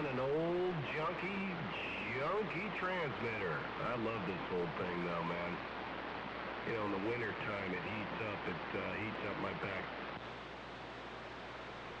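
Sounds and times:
faint low hum: 0.0s - 12.0s
radio receiver hiss: 0.0s - 12.0s.

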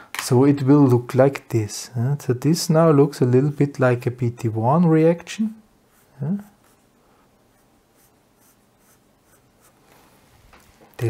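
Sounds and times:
marker scratching on paper: 5.9s - 6.9s, 7.5s - 9.8s.

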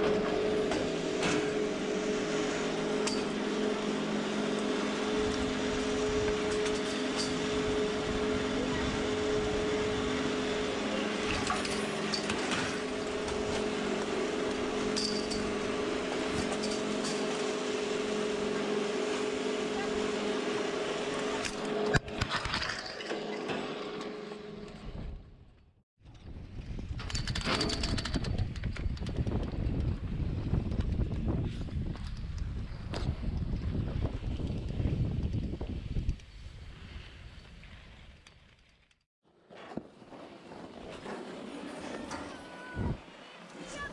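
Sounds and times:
ski lift machinery hum: 0.0s - 38.9s, 40.1s - 43.9s
skis scraping over snow: 33.1s - 43.9s.

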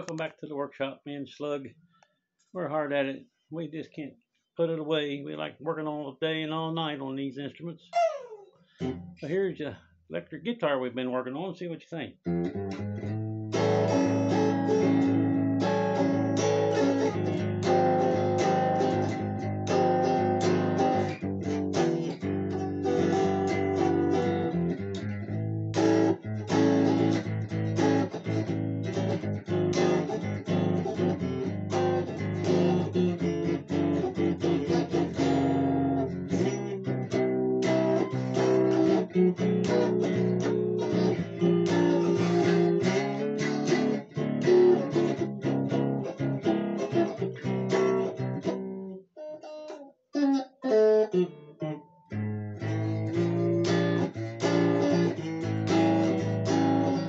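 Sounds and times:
electric guitar chords: 8.8s - 9.3s, 12.3s - 49.0s, 50.2s - 57.0s.

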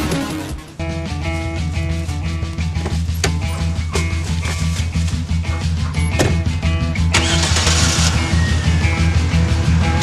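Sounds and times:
music with steady beat: 0.0s - 7.2s
car engine starting: 5.4s - 10.0s.

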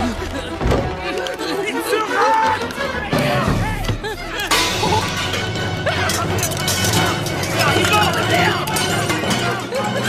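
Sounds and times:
music: 0.0s - 10.0s
voices calling out and chattering: 0.0s - 10.0s.

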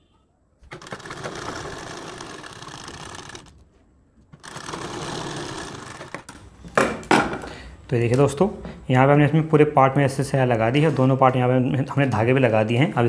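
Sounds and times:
sewing machine stitching: 0.6s - 3.6s, 4.4s - 6.3s.

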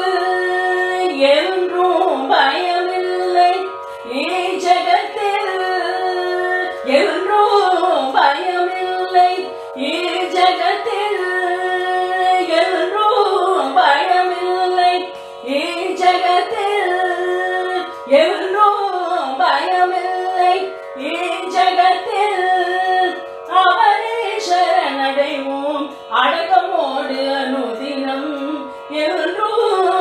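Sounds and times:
person singing devotional song: 0.0s - 30.0s.

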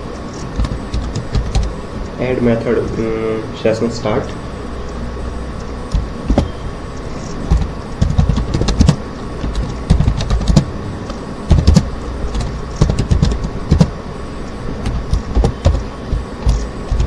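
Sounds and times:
steady background hum: 0.0s - 17.0s
computer keyboard typing: 0.3s - 1.8s, 5.9s - 6.5s, 7.1s - 14.0s, 14.8s - 17.0s.

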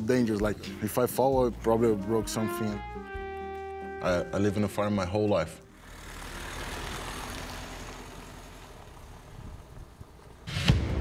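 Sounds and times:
tyres on gravel: 4.4s - 10.5s
truck engine driving away: 5.6s - 11.0s.

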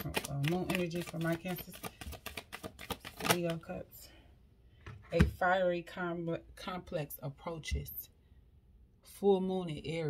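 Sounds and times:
cards being shuffled: 0.0s - 3.6s
person speaking: 0.0s - 4.2s.

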